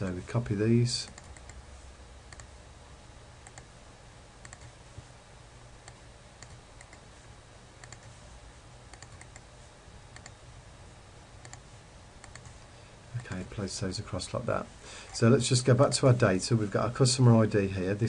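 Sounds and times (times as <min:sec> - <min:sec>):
steady low hum: 0:00.0 - 0:18.0
computer mouse clicks: 0:01.1 - 0:01.6, 0:02.3 - 0:02.5, 0:03.4 - 0:03.7, 0:04.4 - 0:04.7, 0:05.8 - 0:07.0, 0:07.8 - 0:08.2, 0:08.9 - 0:09.5, 0:10.1 - 0:10.4, 0:11.4 - 0:11.6, 0:12.2 - 0:13.5.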